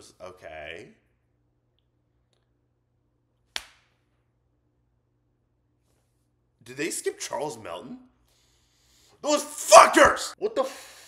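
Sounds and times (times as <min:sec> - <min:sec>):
sharp slap or knock: 0:03.5 - 0:03.9.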